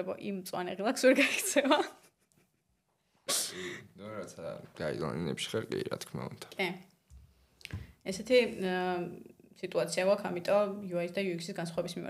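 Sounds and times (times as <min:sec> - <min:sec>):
woman laughing: 0:01.2 - 0:02.4.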